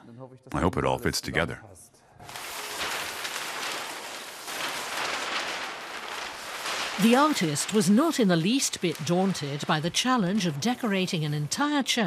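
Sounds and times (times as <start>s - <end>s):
paper rustling and crackling: 2.2s - 12.0s.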